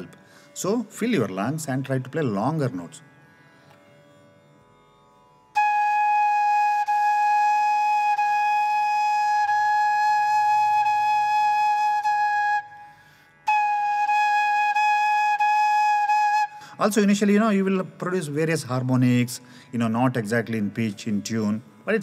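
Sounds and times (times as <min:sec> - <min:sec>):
bamboo flute long held notes: 0:05.6 - 0:16.9.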